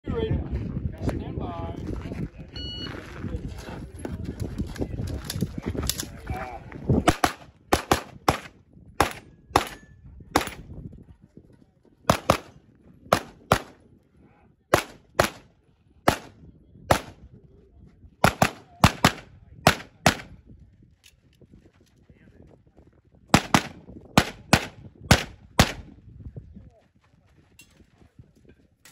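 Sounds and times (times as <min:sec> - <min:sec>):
wind on microphone: 0:00.0 - 0:28.9
pistol shots: 0:07.1 - 0:10.6, 0:12.1 - 0:13.8, 0:14.7 - 0:15.5, 0:16.1 - 0:17.2, 0:18.2 - 0:20.3, 0:23.3 - 0:25.9.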